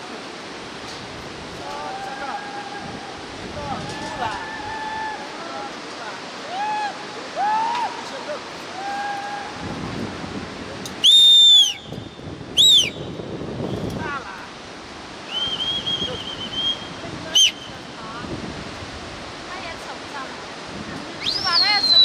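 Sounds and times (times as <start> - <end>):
fast-flowing river rushing: 0.0 - 22.0
shrill rising and falling whistles: 11.0 - 12.0, 12.6 - 13.0, 15.3 - 17.6, 21.2 - 22.0.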